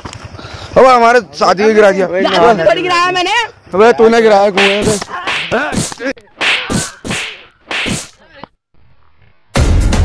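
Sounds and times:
swishing whip-like punch hits: 4.6s - 8.2s.

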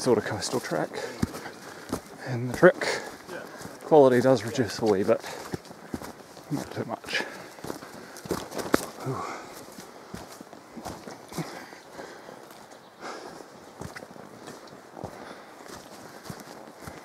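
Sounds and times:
footsteps on dirt and leaves: 0.0s - 17.0s.

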